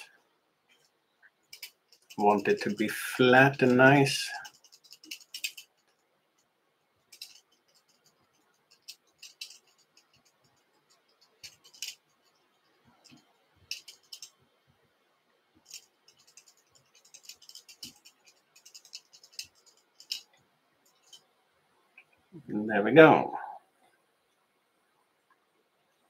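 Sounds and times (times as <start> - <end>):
fingers rustling thread: 0.0 - 22.2.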